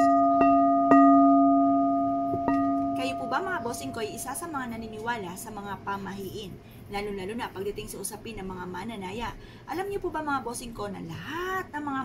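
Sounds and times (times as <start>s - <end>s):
singing bowl struck with mallet: 0.0s - 6.0s.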